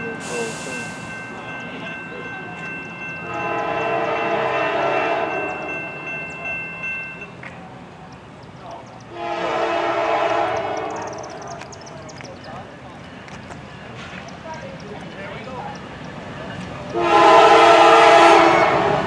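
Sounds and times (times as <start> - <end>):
locomotive air horn blasts: 3.2 - 5.5, 9.1 - 11.4, 16.9 - 19.0.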